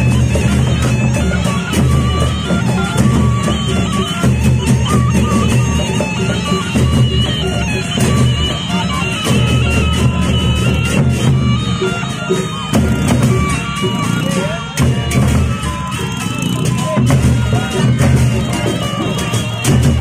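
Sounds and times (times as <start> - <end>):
barrel drums beaten: 0.0 - 20.0
reedy melody of held notes: 0.0 - 20.0.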